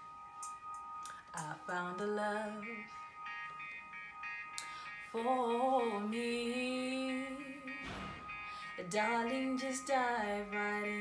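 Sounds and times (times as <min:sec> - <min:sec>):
steady high-pitched tone: 0:00.0 - 0:11.0.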